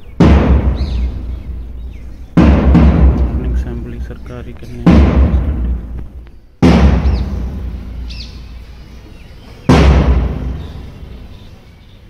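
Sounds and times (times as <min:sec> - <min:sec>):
large drum booming beats: 0:00.0 - 0:08.7, 0:09.7 - 0:11.4
faint birds chirping: 0:00.0 - 0:12.0.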